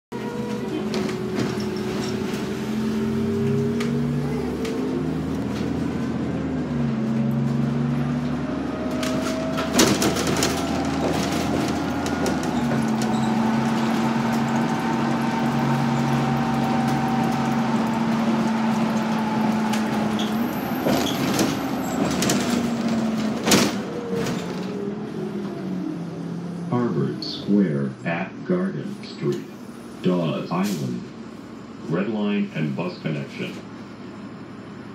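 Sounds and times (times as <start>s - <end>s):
bus diesel engine: 0.1s - 34.9s.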